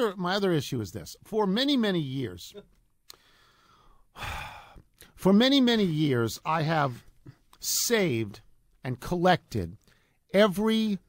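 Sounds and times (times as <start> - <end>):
man breathing: 3.1 - 5.2.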